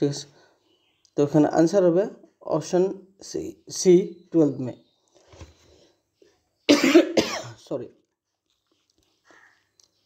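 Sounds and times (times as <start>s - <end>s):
person coughing: 6.7s - 7.6s.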